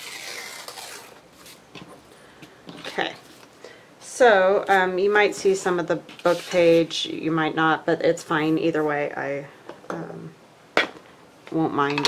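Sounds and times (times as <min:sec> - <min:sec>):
paper tearing: 0:00.0 - 0:01.6, 0:06.2 - 0:06.8.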